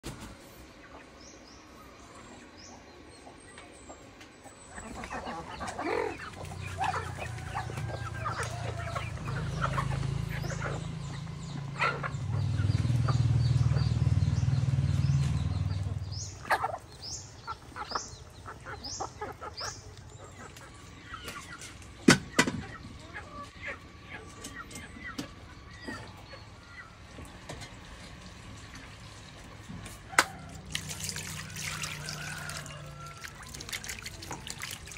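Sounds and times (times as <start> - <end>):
chickens clucking: 0.0 - 34.9
small birds chirping: 0.6 - 34.9.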